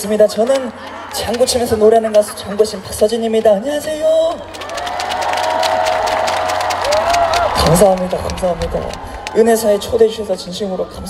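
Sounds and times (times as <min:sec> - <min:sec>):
audience clapping: 0:00.0 - 0:10.1
high-pitched cheer: 0:04.5 - 0:09.9.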